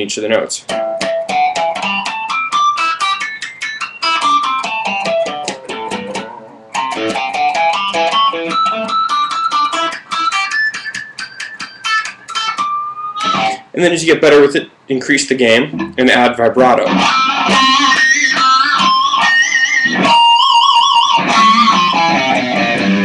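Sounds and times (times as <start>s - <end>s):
electric guitar scale with squeals: 1.3s - 13.8s, 16.9s - 23.0s.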